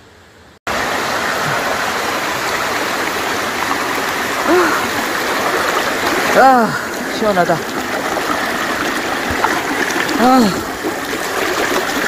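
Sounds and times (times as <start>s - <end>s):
stream rushing over rocks: 0.7s - 12.0s.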